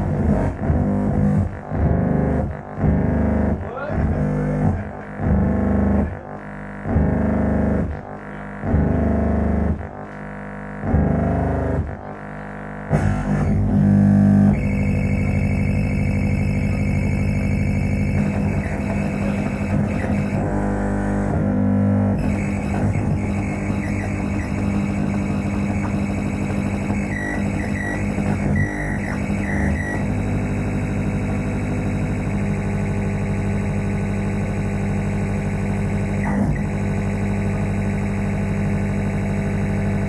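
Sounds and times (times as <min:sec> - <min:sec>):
deep pulsing bass drone: 0:00.0 - 0:40.0
steady high whine: 0:00.0 - 0:40.0.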